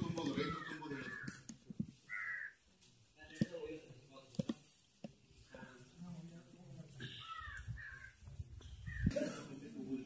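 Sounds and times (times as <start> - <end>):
crow cawing: 0.3 - 1.4, 2.0 - 2.6, 7.1 - 8.2.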